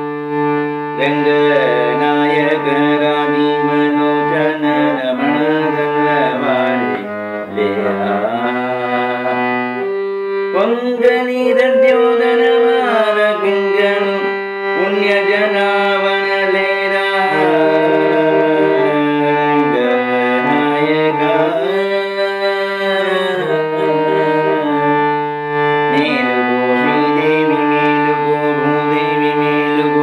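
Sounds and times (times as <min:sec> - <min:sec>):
harmonium held notes: 0:00.0 - 0:30.0
man singing devotional song: 0:00.0 - 0:30.0.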